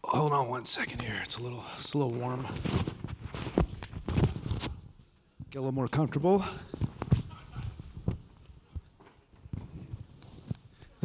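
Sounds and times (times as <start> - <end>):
fabric rustling: 2.3 - 5.1, 6.7 - 11.0
soft microphone handling thumps: 2.4 - 5.6, 6.6 - 11.0.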